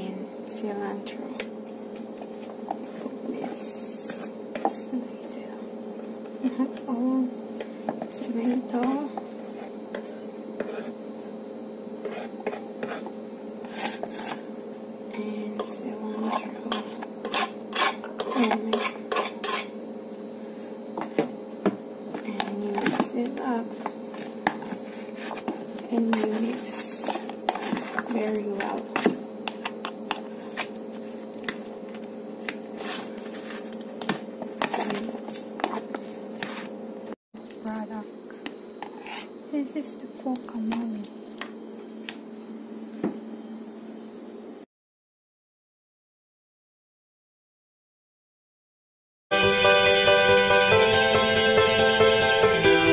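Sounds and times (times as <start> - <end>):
steady low hum: 0.0 - 44.7
utensil scraping cutting board: 9.5 - 11.0, 12.0 - 14.4, 16.1 - 19.7, 23.8 - 30.7, 32.8 - 36.7, 38.8 - 39.3.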